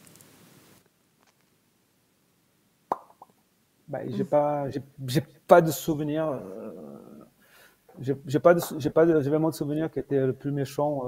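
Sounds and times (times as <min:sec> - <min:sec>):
man speaking: 0:03.9 - 0:11.0.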